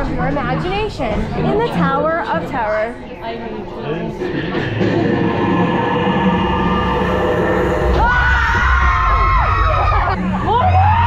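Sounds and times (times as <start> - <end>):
eerie soundtrack with low rumble: 4.2 - 11.0.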